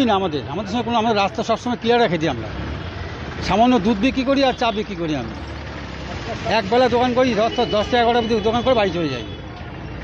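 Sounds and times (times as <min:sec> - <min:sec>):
street traffic rumble: 0:00.0 - 0:10.0
man speaking: 0:06.1 - 0:09.4.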